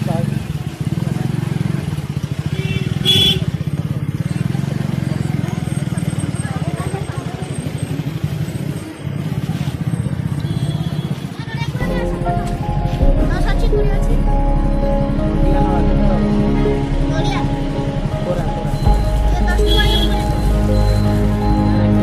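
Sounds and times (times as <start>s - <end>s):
people talking: 4.3s - 8.2s, 11.3s - 14.5s, 15.4s - 20.9s.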